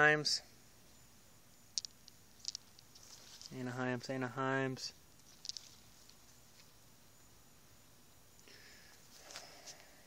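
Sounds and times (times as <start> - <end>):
plant leaves rustling: 2.4 - 4.2, 5.0 - 7.1.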